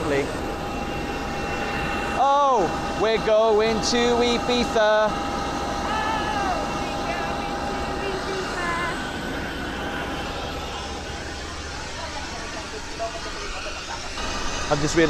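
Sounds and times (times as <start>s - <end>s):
jet airliners rushing noise: 0.0s - 15.0s
faint voices: 5.7s - 14.2s.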